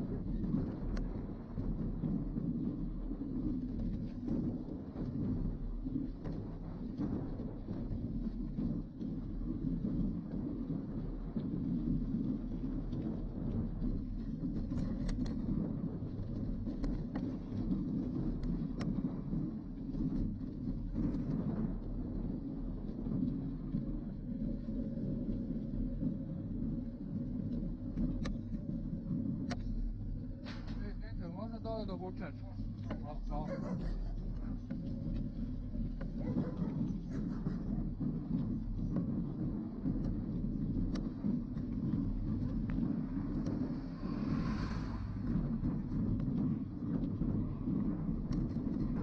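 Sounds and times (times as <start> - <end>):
bike tyres rumbling on gravel: 0.0 - 49.0.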